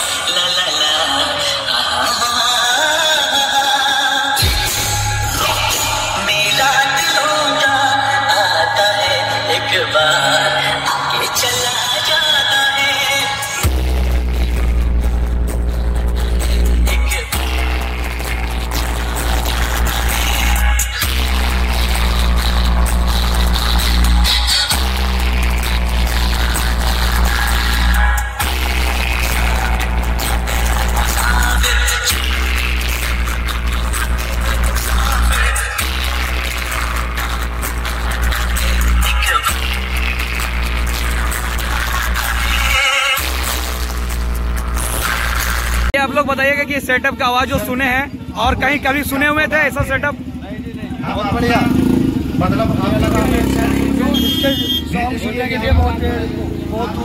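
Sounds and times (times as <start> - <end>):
loud electronic music with sub-bass: 0.0 - 50.2, 51.4 - 57.0.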